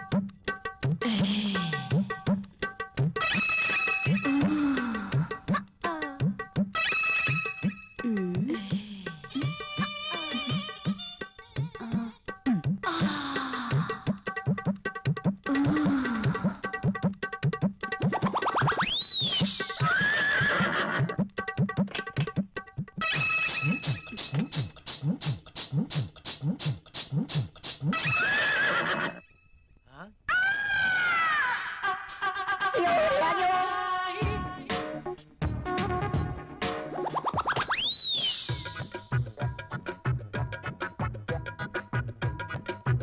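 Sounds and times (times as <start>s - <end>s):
gliding whistle tone: 18.6s - 20.0s, 37.1s - 38.8s
rising whistle-like chirps: 18.6s - 20.1s, 37.3s - 38.8s
comic background music with drums: 33.6s - 43.0s.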